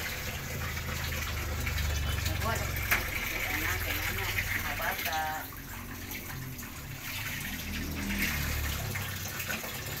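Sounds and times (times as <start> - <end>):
broth bubbling: 0.0 - 10.0.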